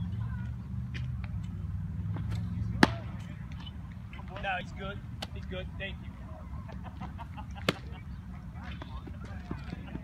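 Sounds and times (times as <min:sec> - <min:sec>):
baseball popping into leather mitt: 0:02.2 - 0:03.1.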